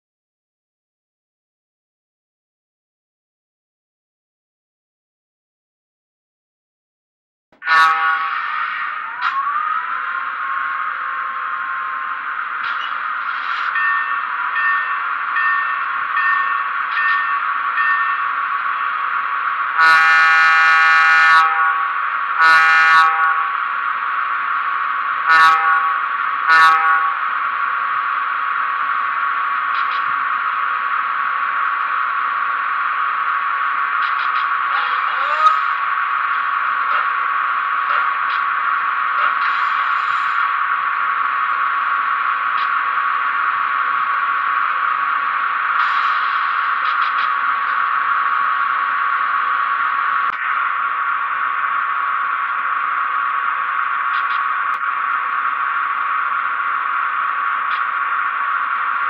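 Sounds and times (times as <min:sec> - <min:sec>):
model train horn: 0:07.6 - 0:12.0, 0:19.7 - 0:23.6, 0:25.2 - 0:27.3
model train electric hum: 0:07.6 - 0:59.0
locomotive bell through small speaker: 0:12.8 - 0:18.9.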